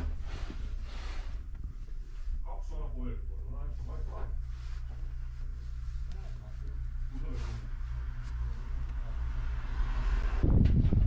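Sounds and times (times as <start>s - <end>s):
tractor diesel engine idling: 0.0s - 9.3s
low rough engine rumble: 0.0s - 11.0s.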